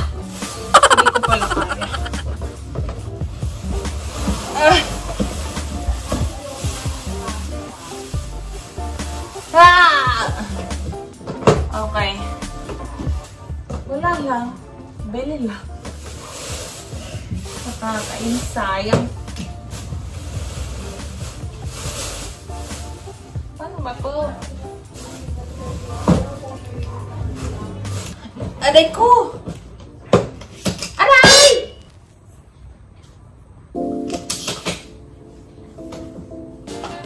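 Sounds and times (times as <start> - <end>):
background music: 0.0 - 31.8, 33.6 - 37.0
sustained keyboard chords: 33.8 - 37.0.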